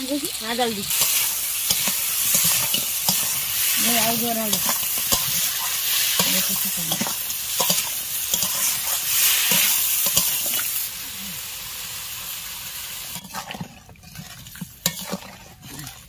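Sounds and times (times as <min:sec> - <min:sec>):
crab sizzling in a wok: 0:00.0 - 0:16.0
metal spatula scraping wok: 0:00.8 - 0:10.9, 0:13.1 - 0:16.0
water pouring: 0:13.1 - 0:16.0.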